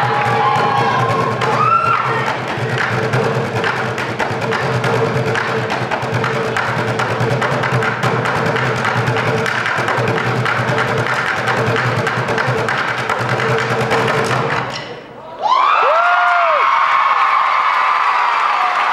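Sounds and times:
audience cheering and applauding: 0.0s - 2.5s, 15.4s - 18.9s
buckets drummed with sticks: 0.0s - 15.0s.

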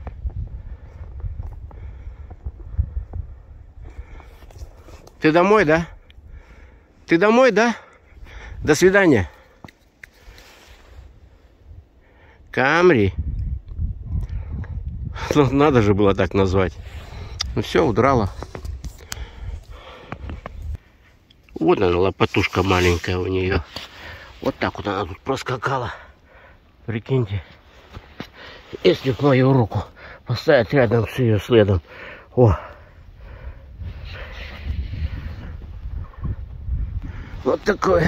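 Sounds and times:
wind rumbling on microphone: 0.0s - 6.8s, 10.2s - 20.8s, 32.6s - 38.0s.

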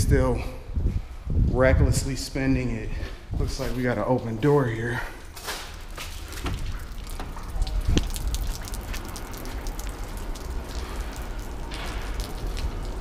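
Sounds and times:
water dripping on wet pavement: 4.0s - 13.0s.

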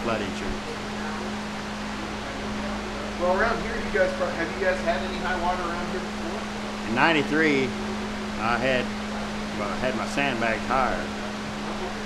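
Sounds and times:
floor fan motor hum: 0.0s - 12.0s.

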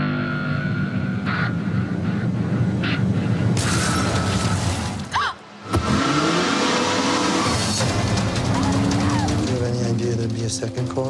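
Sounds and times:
car engine revving: 5.6s - 10.4s
tyres spinning: 7.5s - 11.0s.

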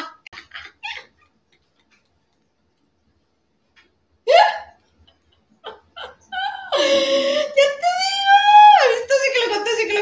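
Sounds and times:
woman laughing: 0.0s - 2.1s, 4.3s - 7.7s.

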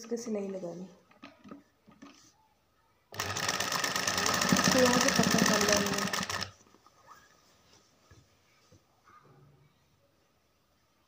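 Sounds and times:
sewing machine stitching: 3.1s - 6.6s.

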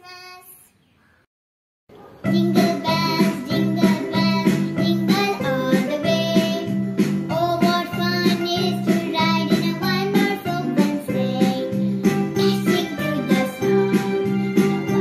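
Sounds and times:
girl singing: 0.0s - 0.7s, 2.2s - 15.0s.

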